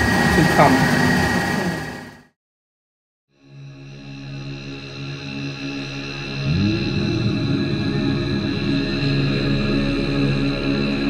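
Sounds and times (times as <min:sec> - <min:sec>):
machine hum with high whine: 0:00.0 - 0:02.2.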